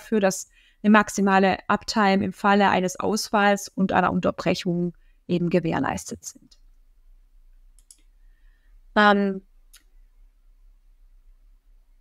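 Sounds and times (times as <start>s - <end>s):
faint clicks: 7.7s - 8.2s.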